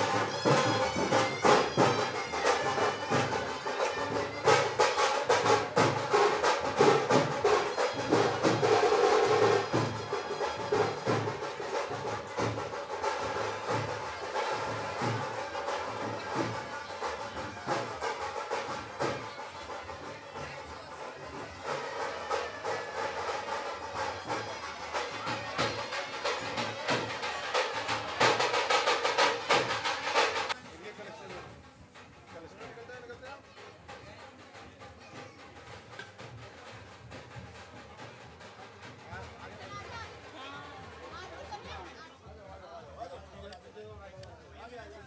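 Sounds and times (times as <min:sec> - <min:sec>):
steady drum beat: 0:00.0 - 0:45.0.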